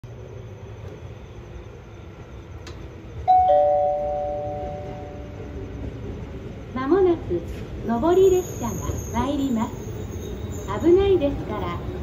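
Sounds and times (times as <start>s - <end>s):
two-note chime over speakers: 3.3s - 5.3s.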